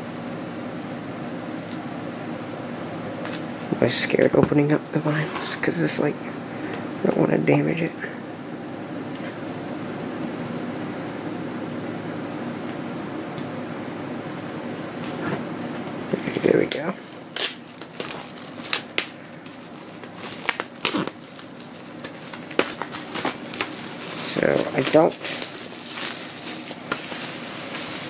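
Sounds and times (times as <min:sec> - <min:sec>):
plastic shrink wrap crackling: 0:16.2 - 0:28.0.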